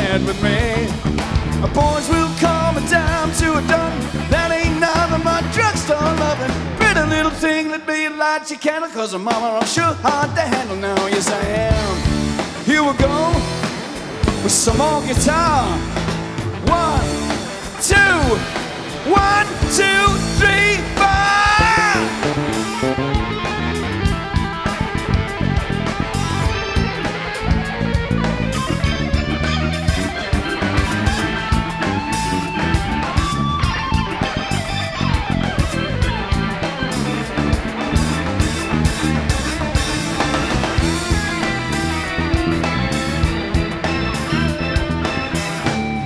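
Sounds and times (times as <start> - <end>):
live band playing: 0.0 - 8.1, 9.2 - 46.0
electric guitar solo: 12.0 - 46.0.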